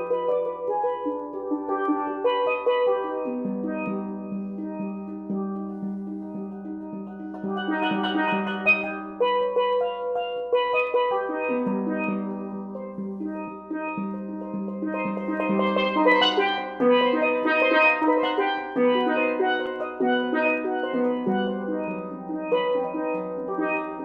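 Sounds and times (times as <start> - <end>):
steel pans played with mallets: 0.0 - 24.0.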